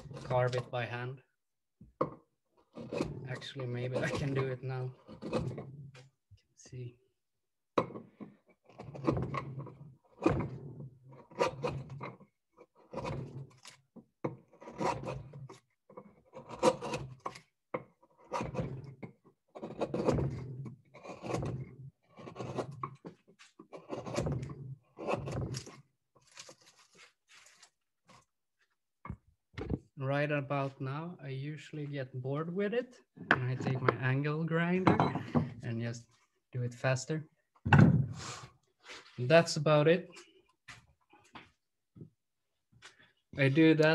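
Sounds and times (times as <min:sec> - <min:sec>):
carving gouge scraping wood: 0:00.0 - 0:00.7, 0:02.6 - 0:06.1, 0:08.0 - 0:28.3.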